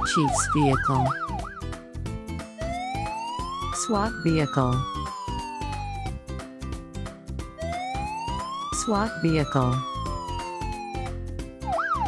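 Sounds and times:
cartoon siren: 0:00.0 - 0:01.6, 0:02.6 - 0:06.2, 0:07.6 - 0:12.0
light background music: 0:00.0 - 0:12.0.

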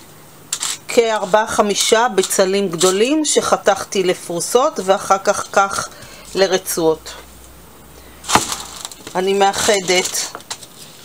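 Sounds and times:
potatoes scraping off board: 0:08.3 - 0:10.3.

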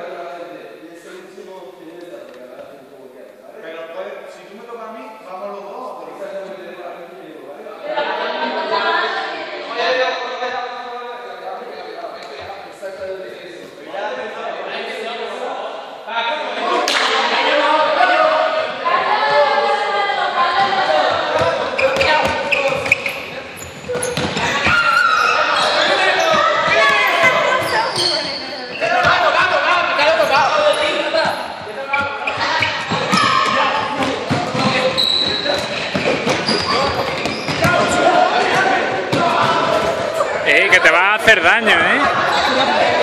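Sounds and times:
people shouting excitedly: 0:24.4 - 0:28.2, 0:32.3 - 0:34.0, 0:36.5 - 0:43.0
footfalls on gym floor: 0:31.2 - 0:40.2.

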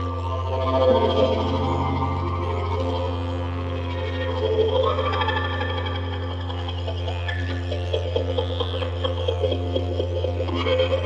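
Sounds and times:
didjeridu low drone: 0:00.0 - 0:11.0
higher sliding instrument tones: 0:00.2 - 0:05.8.

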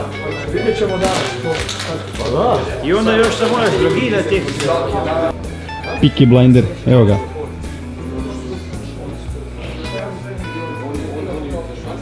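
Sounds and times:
guitar: 0:00.0 - 0:12.0.

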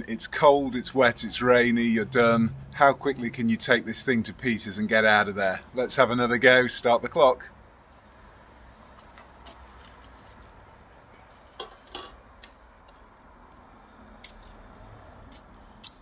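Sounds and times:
faint steady background noise: 0:00.0 - 0:16.0.

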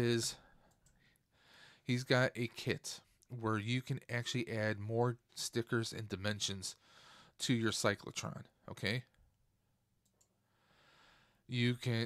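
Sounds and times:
soft in-breath: 0:00.4 - 0:01.8, 0:06.8 - 0:07.4, 0:10.5 - 0:11.4
computer mouse clicks: 0:00.7 - 0:01.0, 0:10.0 - 0:10.3.

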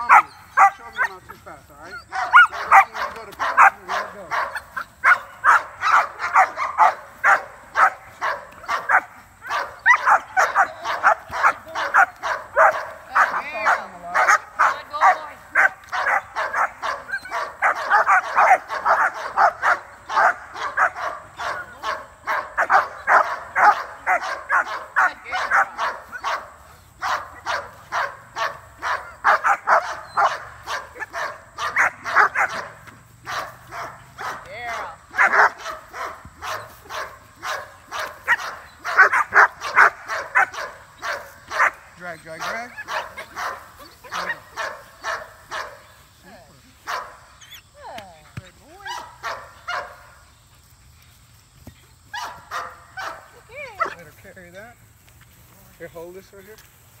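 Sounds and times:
dog barking: 0:00.0 - 0:01.3, 0:01.9 - 0:45.9, 0:46.8 - 0:47.6, 0:48.8 - 0:50.2, 0:52.1 - 0:54.0.

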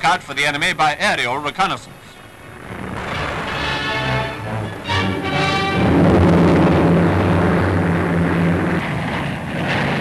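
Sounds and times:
biplane propeller engine droning: 0:01.6 - 0:10.0.

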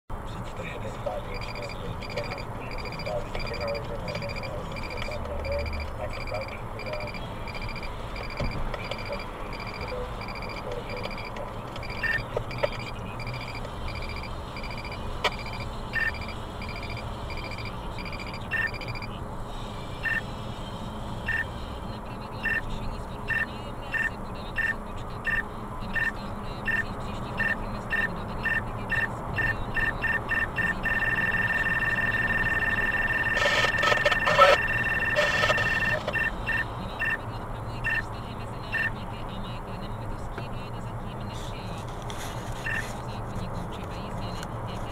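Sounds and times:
car road noise: 0:00.1 - 0:44.9
radar detector beeping: 0:01.1 - 0:19.2, 0:20.0 - 0:20.3, 0:21.2 - 0:21.6, 0:22.4 - 0:38.1, 0:38.7 - 0:39.0, 0:42.6 - 0:43.1.

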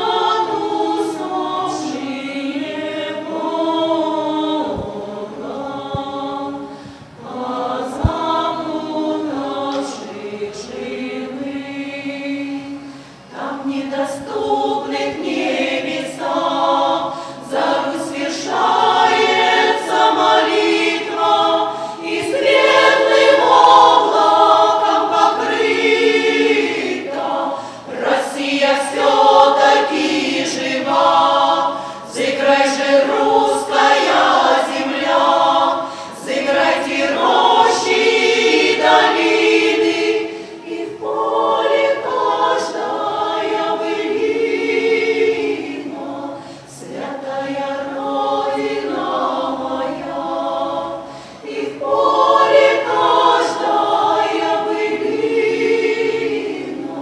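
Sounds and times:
women's choir singing unaccompanied: 0:00.0 - 0:57.0.

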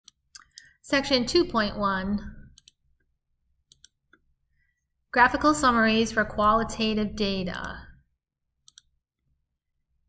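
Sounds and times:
computer mouse clicks: 0:02.6 - 0:02.8, 0:03.7 - 0:04.2, 0:08.6 - 0:08.9.

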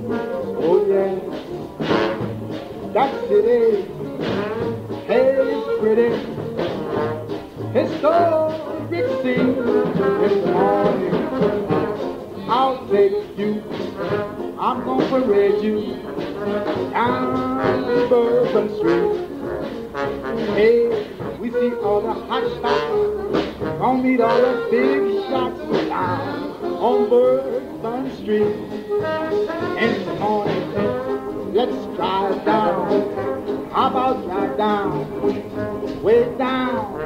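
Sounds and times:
traditional jazz band playing: 0:00.0 - 0:37.0.

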